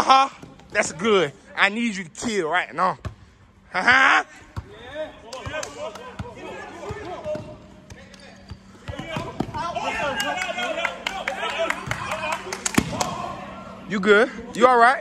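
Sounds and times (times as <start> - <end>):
players calling out: 3.6 - 15.0
basketball bouncing on gym floor: 5.4 - 9.7.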